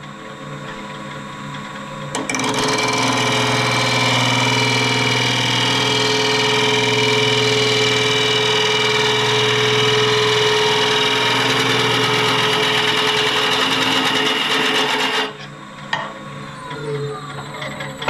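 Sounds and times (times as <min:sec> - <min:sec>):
wood lathe motor hum: 0:02.2 - 0:15.5
turning tool shaving wood: 0:02.3 - 0:15.4.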